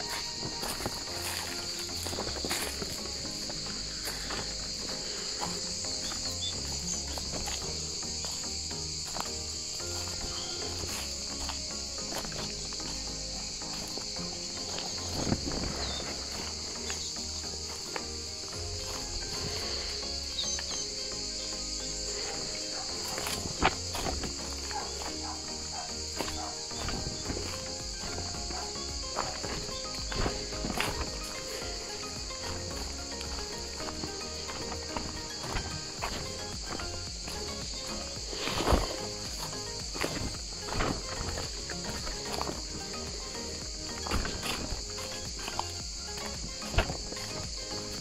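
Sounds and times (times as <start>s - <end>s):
background music: 0.0s - 48.0s
cicadas buzzing: 0.0s - 48.0s
footsteps on dry leaves and stones: 0.0s - 48.0s.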